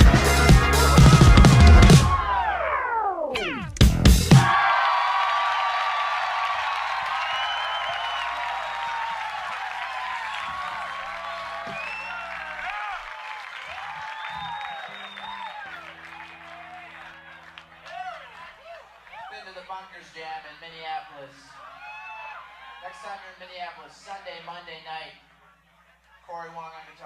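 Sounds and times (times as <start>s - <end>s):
drum kit hits: 0.0s - 2.5s, 3.4s - 4.6s.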